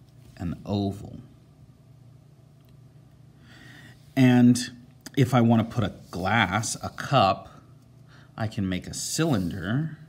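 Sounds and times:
background hiss: 0.0s - 10.0s
faint low hum: 0.0s - 10.0s.

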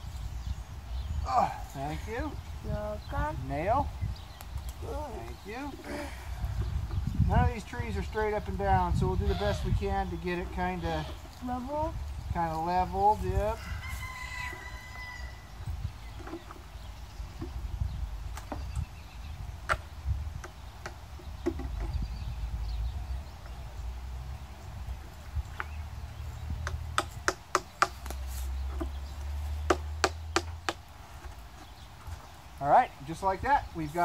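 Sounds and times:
hammer striking a nail: 29.7s - 30.8s.

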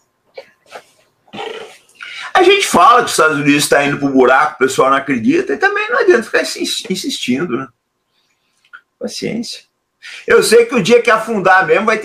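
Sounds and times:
man's throaty noise: 1.3s - 2.3s
man speaking: 1.4s - 7.8s, 8.8s - 12.0s.

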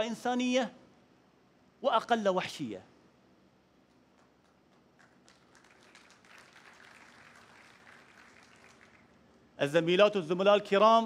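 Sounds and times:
audience applause: 4.4s - 9.3s.

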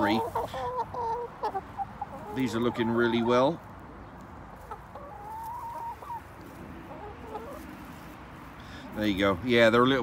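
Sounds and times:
hens clucking: 0.0s - 10.0s.

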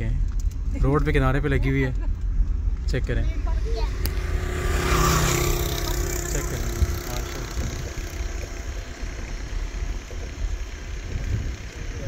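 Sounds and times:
vehicle engine running: 0.0s - 12.0s
wind rumble on microphone: 0.0s - 12.0s.

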